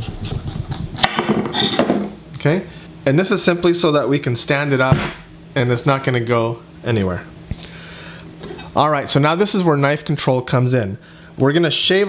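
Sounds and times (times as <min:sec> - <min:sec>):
knife sawing through squash: 0:00.0 - 0:01.8
sharp knock on cutting board: 0:01.0 - 0:01.5.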